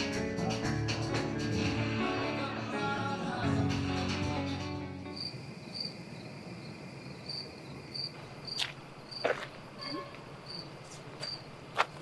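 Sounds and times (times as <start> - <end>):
crickets chirping: 4.4 - 12.0.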